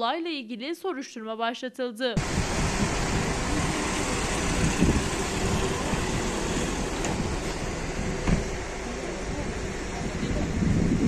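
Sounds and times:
van driving away: 2.2 - 11.0
wind buffeting microphone: 2.2 - 11.0.

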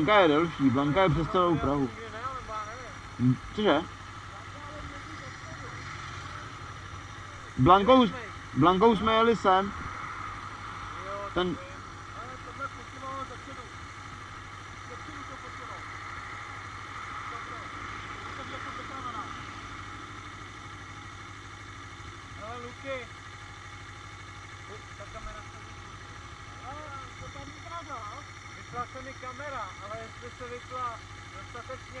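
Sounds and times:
motorcycle engine idling: 0.0 - 32.0.

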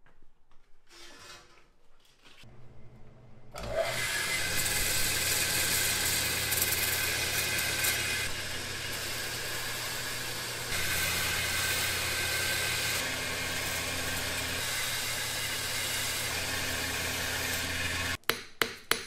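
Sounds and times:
belt grinder motor hum: 3.6 - 18.2.

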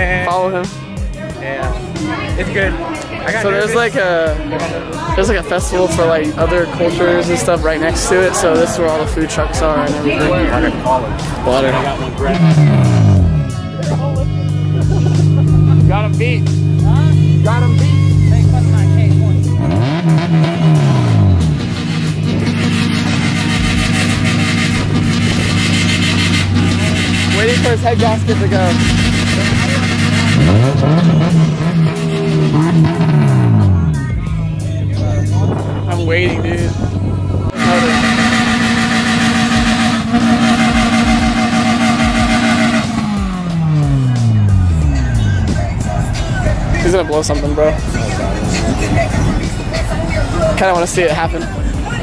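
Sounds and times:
car engine revving: 0.0 - 52.0.

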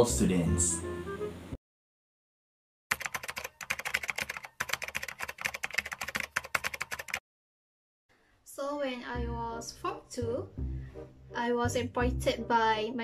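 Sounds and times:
rapid typing on keyboard: 2.9 - 7.2.

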